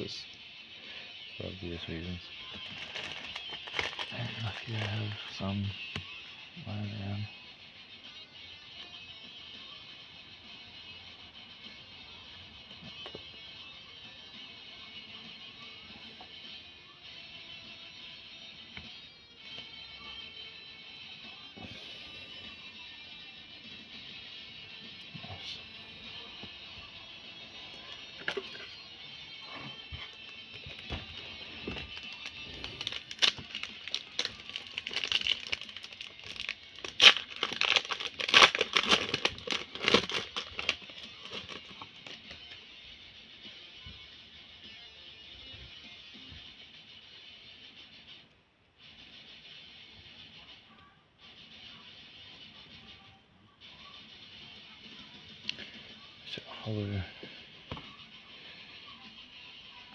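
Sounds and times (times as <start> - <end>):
background music: 0.0 - 59.9
foil pack crinkling: 2.5 - 5.5, 30.0 - 42.4.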